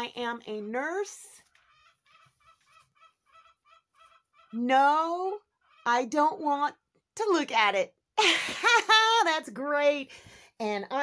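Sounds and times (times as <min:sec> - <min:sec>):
chickens clucking: 0:01.5 - 0:04.6.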